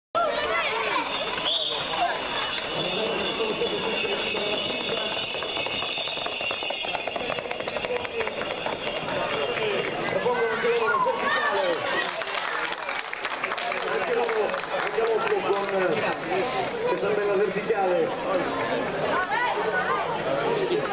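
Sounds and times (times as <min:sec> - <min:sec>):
crowd talking and calling out: 0:00.2 - 0:20.9
horses galloping on pavement: 0:00.4 - 0:12.7.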